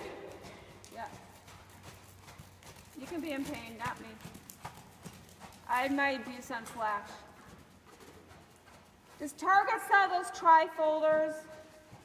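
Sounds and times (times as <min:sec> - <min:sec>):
horse hooves cantering on sand: 0:00.0 - 0:12.0.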